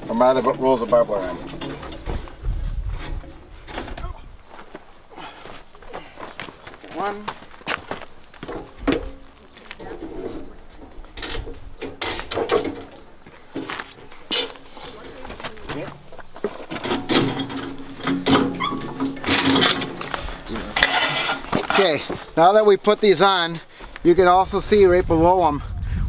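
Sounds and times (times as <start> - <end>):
workers talking: 0.0 - 25.0.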